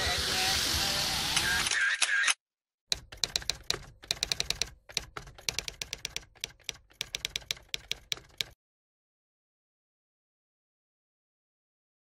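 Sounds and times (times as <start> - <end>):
typing key clicks: 2.0 - 8.6.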